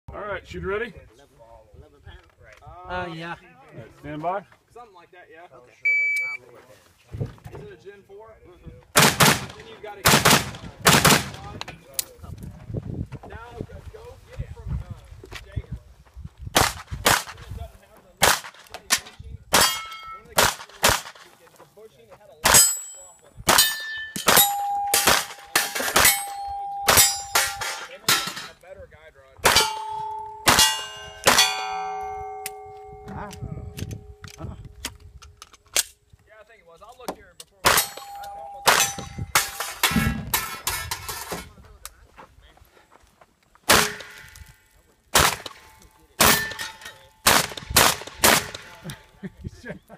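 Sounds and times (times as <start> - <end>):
pistol shots: 9.0 - 11.4, 16.6 - 17.4, 18.2 - 18.6, 20.4 - 21.2, 23.5 - 27.8, 29.4 - 32.7, 37.6 - 39.7, 43.7 - 44.2, 45.1 - 48.8
steel targets ringing: 19.6 - 20.3, 22.5 - 28.5, 29.4 - 33.2, 37.7 - 40.6, 45.6 - 47.3.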